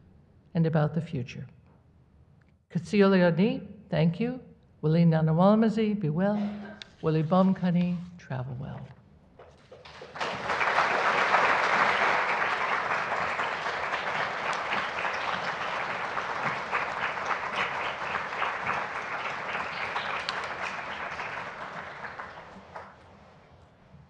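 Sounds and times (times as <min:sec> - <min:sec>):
audience applauding: 0:09.6 - 0:23.3.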